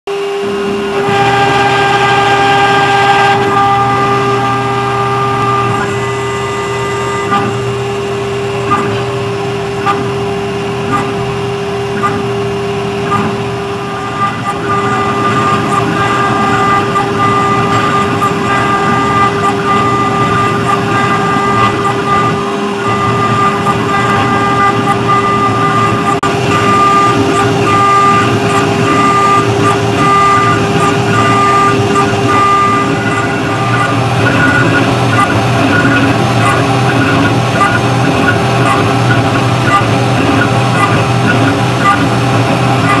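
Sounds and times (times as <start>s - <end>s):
cutter engraving steel plate: 0.1s - 43.0s
engraving machine spindle whine: 0.1s - 43.0s.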